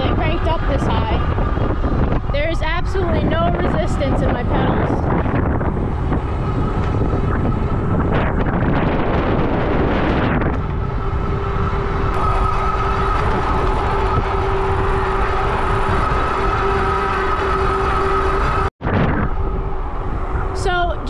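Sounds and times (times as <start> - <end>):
wind rumble on microphone: 0.0 - 21.0
electric motor two-tone whine: 4.6 - 18.7
tyres rolling on asphalt: 9.1 - 18.7.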